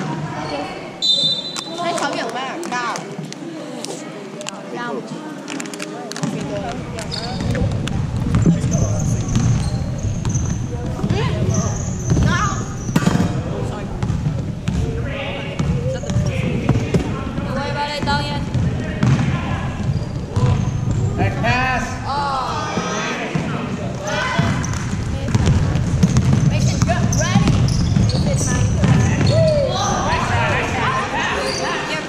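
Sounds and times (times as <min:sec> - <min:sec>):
voices echoing in gym: 0:00.0 - 0:32.0
sneaker squeaks: 0:00.2 - 0:02.2, 0:06.2 - 0:13.4, 0:15.5 - 0:17.1, 0:18.0 - 0:21.2, 0:24.0 - 0:30.4, 0:31.2 - 0:32.0
basketball dribbling on hardwood: 0:24.4 - 0:29.3.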